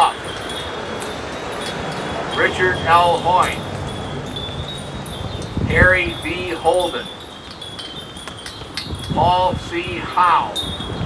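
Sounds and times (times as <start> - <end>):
wind chimes tinkling: 0.0 - 11.0.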